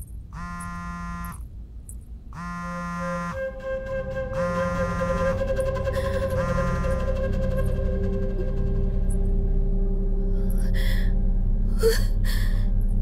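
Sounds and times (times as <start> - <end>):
background music held tone: 2.3 - 13.0.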